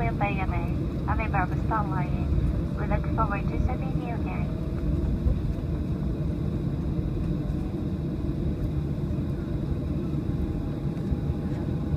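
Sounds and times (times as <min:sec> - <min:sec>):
aircraft cabin engine rumble: 0:00.0 - 0:11.9.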